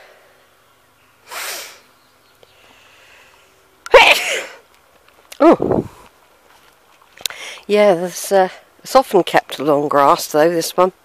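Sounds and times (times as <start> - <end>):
hissy breaths: 1.2 - 3.7, 7.2 - 7.7
person sneezing: 3.9 - 4.6
short vocal sound: 5.4 - 6.0.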